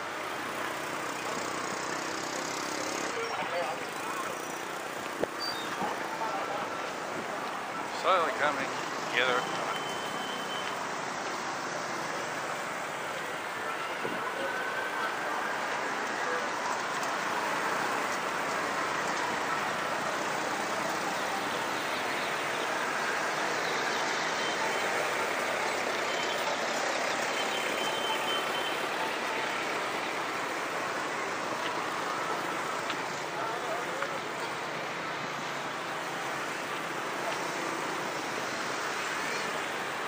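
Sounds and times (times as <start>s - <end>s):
motorbikes and cars on road: 0.0s - 40.0s.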